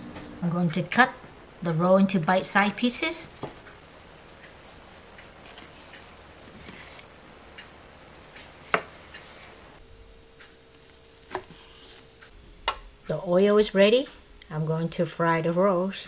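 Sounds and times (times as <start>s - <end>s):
knife tapping plastic board: 8.7s - 9.0s.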